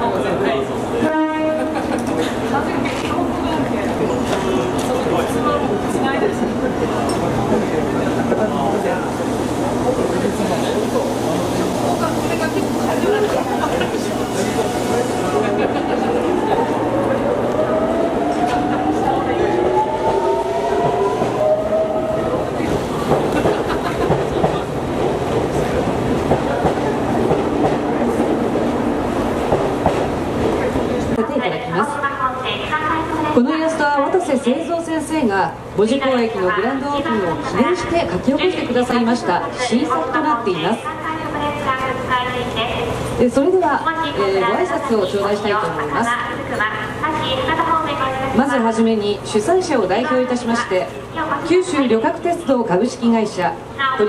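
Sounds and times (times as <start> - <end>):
crowd murmur: 0.0 - 32.0
train wheels clattering on rails: 23.0 - 31.0.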